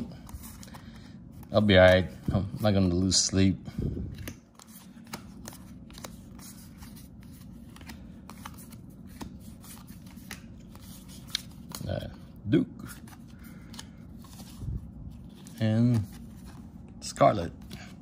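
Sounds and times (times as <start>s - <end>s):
paper cards flipped by hand: 4.1s - 12.2s.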